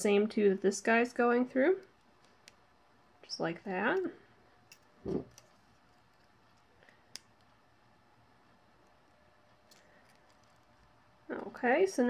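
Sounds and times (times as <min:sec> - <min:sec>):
pliers clicking on wire: 0:03.9 - 0:07.6, 0:09.6 - 0:10.9
low thump: 0:05.0 - 0:05.3.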